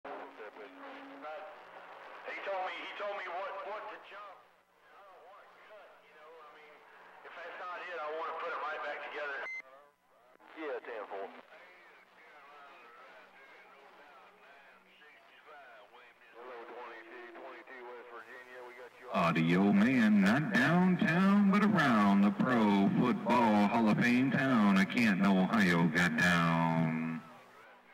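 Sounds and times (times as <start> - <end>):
muffled voices over radio speaker: 0.1 - 27.9.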